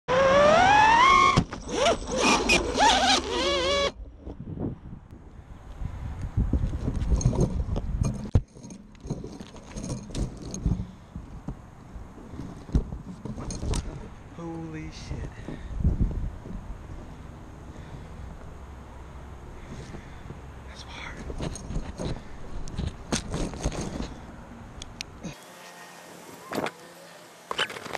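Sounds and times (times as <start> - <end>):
quadcopter motors whining: 0.1 - 4.0
wind: 0.1 - 27.9.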